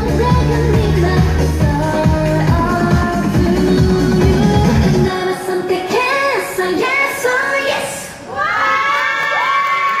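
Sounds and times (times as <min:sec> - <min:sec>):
music: 0:00.0 - 0:06.8
audience cheering and screaming: 0:08.3 - 0:10.0.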